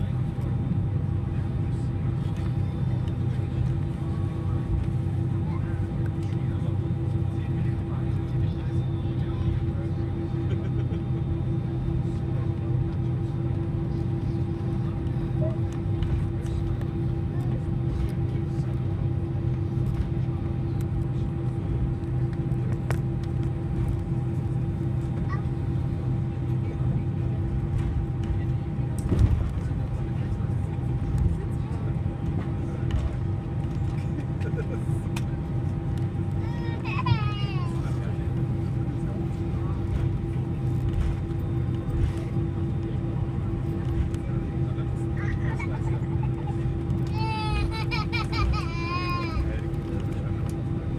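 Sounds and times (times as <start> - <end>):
airliner cabin rumble and hum: 0.0 - 50.9.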